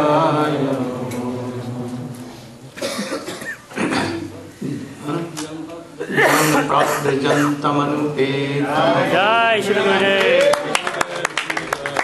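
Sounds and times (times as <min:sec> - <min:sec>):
chanted prayer: 0:00.0 - 0:02.6
person coughing: 0:02.8 - 0:04.3, 0:06.0 - 0:07.6.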